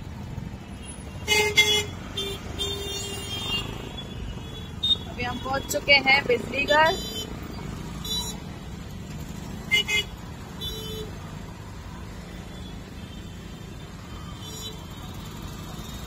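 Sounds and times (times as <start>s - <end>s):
traffic hum and road noise: 0.0s - 16.0s.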